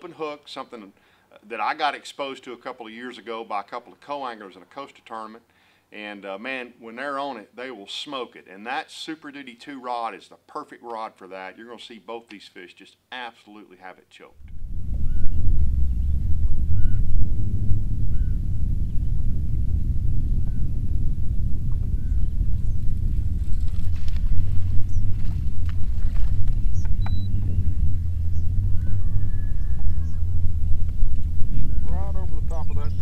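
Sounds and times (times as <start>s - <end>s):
wind buffeting microphone: 14.4s - 33.0s
faint short chirps: 26.8s - 27.3s.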